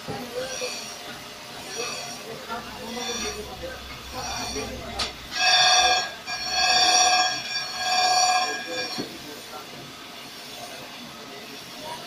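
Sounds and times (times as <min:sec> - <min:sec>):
machine running steadily: 0:00.0 - 0:12.0
grinding wheel screeching: 0:00.1 - 0:09.6.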